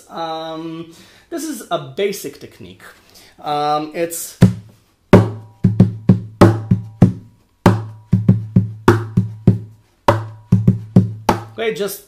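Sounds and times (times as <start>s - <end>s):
percussive drumming on acoustic guitar: 4.4s - 11.6s.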